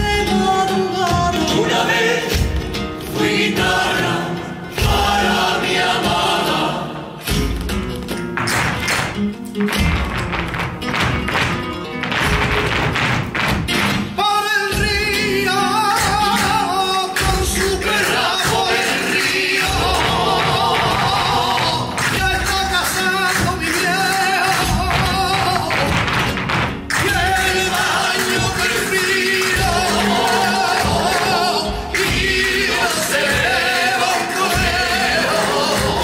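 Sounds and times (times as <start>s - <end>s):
person singing flamenco: 0.0s - 36.0s.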